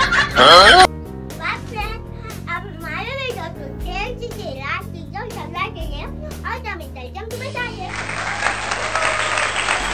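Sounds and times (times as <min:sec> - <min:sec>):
background music: 0:00.0 - 0:09.9
applause: 0:07.9 - 0:09.9.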